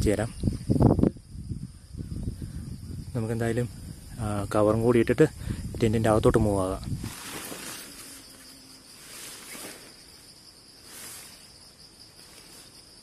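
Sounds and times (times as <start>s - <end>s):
insect chirring: 0.0s - 13.0s
nylon rainfly rustling: 6.9s - 13.0s.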